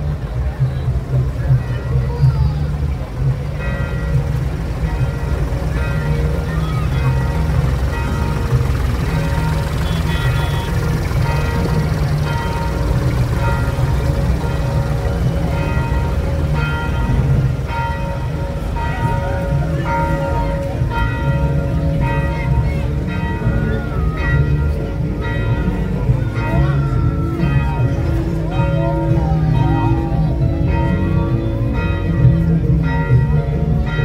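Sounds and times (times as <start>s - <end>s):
heavy low rumble: 0.0s - 34.0s
bell-like ringing tones: 1.5s - 34.0s.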